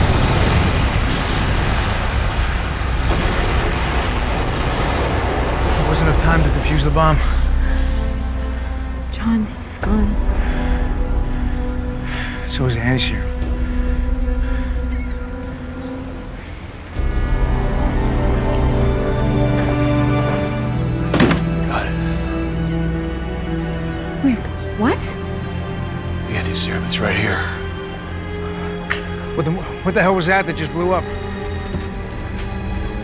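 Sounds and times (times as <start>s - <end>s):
crackling noise: 0.0s - 9.7s
heavy low rumble: 0.0s - 26.4s.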